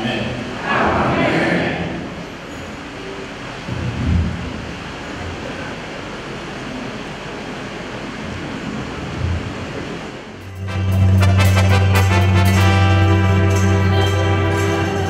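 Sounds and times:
crowded hall background noise: 0:00.0 - 0:15.0.

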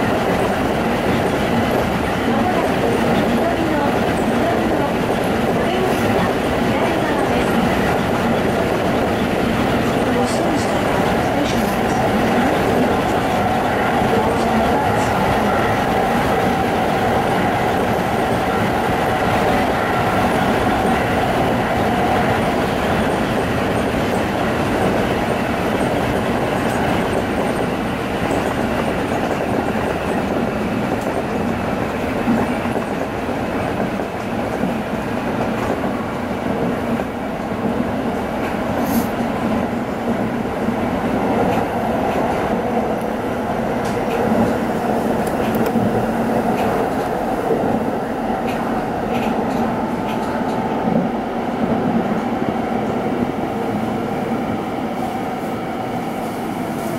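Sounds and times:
electric train rolling on rails: 0:00.0 - 0:56.9.

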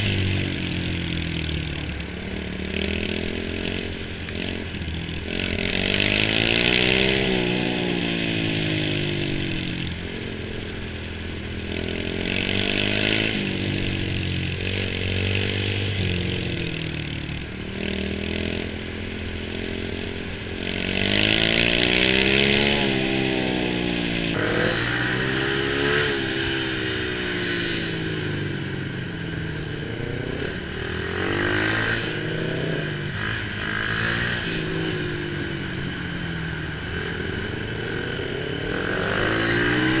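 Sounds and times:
motorcycle engine revving: 0:00.0 - 0:40.0.

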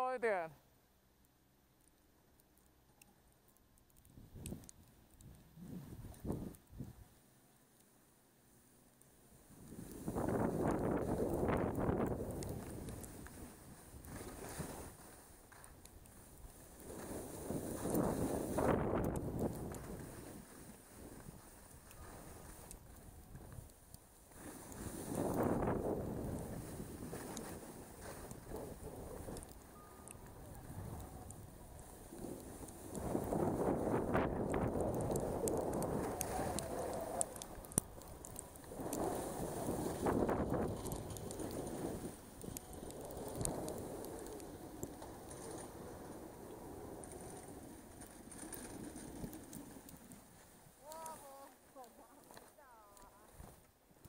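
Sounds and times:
skis scraping on snow: 0:09.4 - 0:54.0
wind on microphone: 0:17.2 - 0:20.5, 0:30.2 - 0:45.0.

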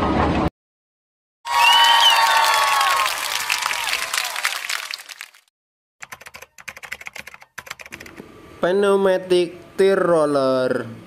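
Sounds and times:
crackling applause-like noise: 0:01.5 - 0:05.5
keyboard typing clicks: 0:06.0 - 0:08.2.

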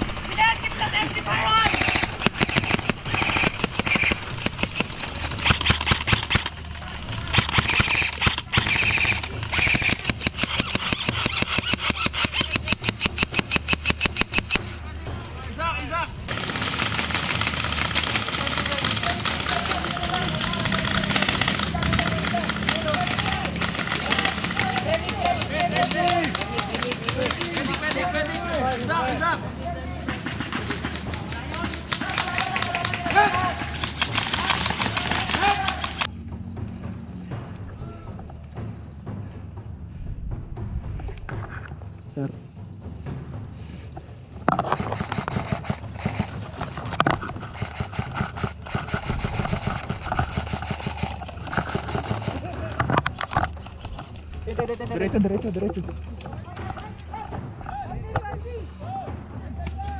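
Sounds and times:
airsoft rifles firing: 0:00.0 - 0:14.8, 0:16.3 - 0:29.4, 0:30.0 - 0:36.1, 0:44.5 - 0:54.1
players shouting: 0:15.4 - 0:36.1.

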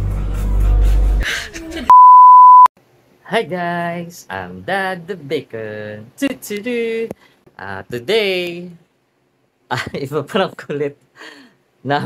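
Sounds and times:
censor beep tone: 0:01.9 - 0:02.7.

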